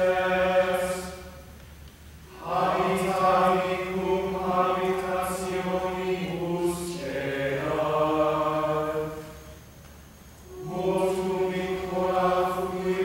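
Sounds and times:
small choir chanting in unison: 0.0 - 1.5, 2.3 - 9.7, 10.4 - 13.0.

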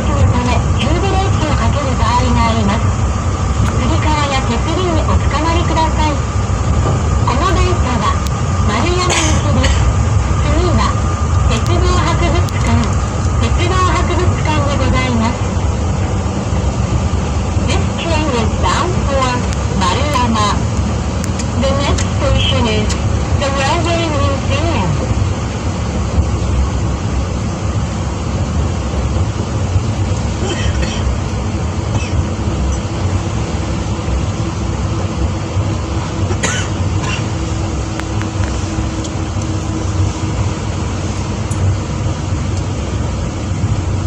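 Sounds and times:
train cabin low rumble: 0.0 - 44.0
voices talking: 7.2 - 15.5, 17.6 - 20.7, 21.4 - 25.0.

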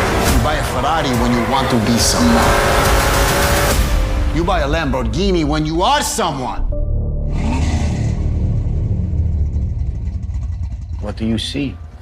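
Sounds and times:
car engine running: 0.0 - 4.1, 8.3 - 12.0.

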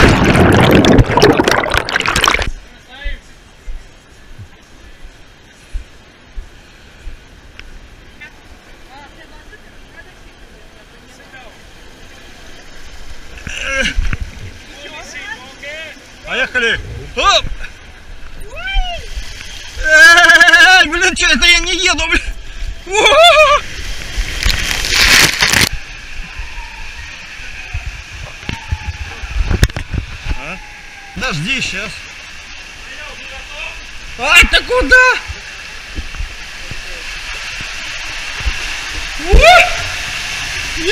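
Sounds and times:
water rushing down a water slide: 0.0 - 2.9, 8.9 - 40.9
wet hiss: 18.5 - 40.9.

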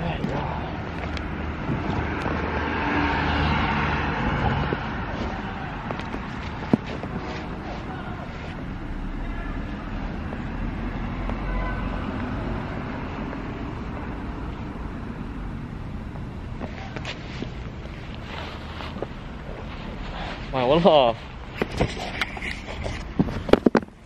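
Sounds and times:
outdoor background noise: 0.0 - 24.0
wind rumbling on microphone: 0.3 - 8.3
rustles and handling knocks: 4.4 - 8.6, 21.4 - 24.0.

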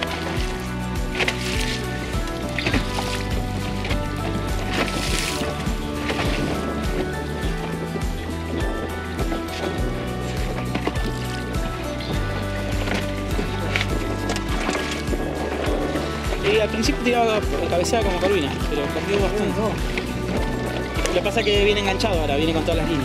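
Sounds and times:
background music with bass: 0.0 - 23.0.

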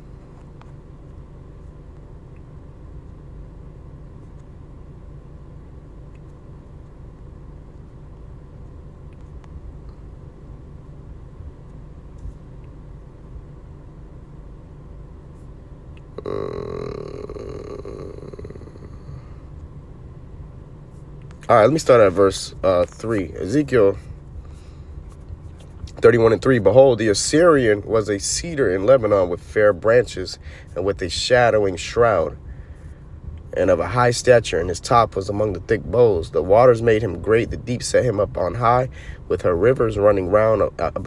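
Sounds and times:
low background hum: 0.0 - 41.0
loud hissing noise: 16.2 - 19.3.

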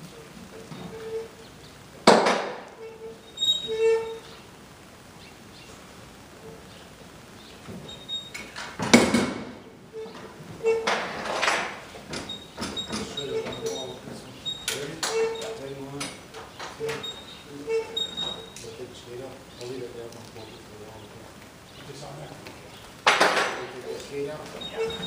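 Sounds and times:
things knocking and clattering in truck: 2.0 - 2.7, 7.7 - 18.7, 23.0 - 23.8.

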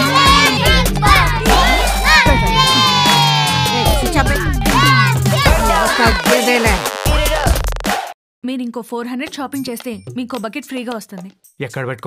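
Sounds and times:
children shouting and yelling: 0.0 - 6.4
background music with bass line: 0.0 - 8.1.

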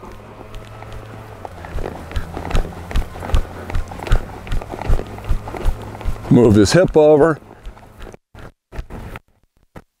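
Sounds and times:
horse hoofbeats on sand: 0.0 - 9.2.

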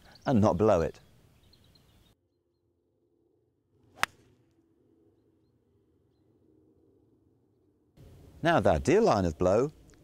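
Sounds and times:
golf club swishing: 3.9 - 4.3
golf club striking ball: 4.0 - 4.3.

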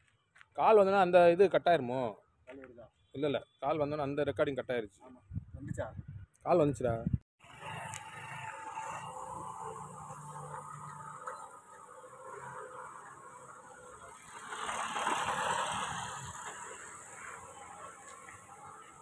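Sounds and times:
outdoor background noise: 0.0 - 19.0
vehicle passing by: 7.4 - 19.0.

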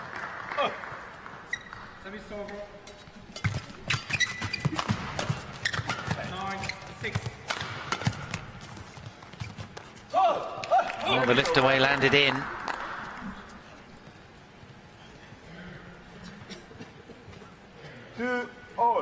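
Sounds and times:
racket striking shuttlecock: 3.3 - 6.3, 7.2 - 8.6.

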